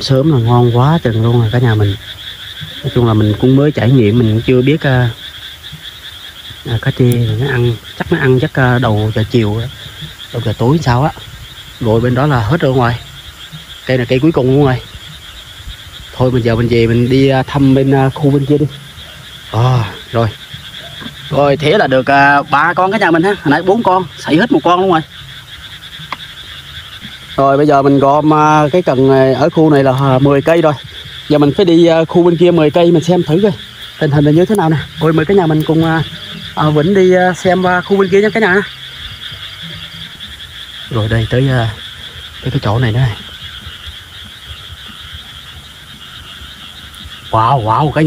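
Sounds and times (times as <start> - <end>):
frogs croaking: 0.0 - 48.0
high-pitched insect trill: 0.0 - 48.0.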